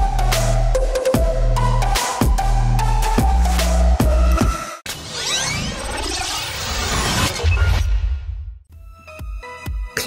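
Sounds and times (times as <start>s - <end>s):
electronic music: 0.0s - 10.0s
whoosh and shatter effect: 4.9s - 8.2s.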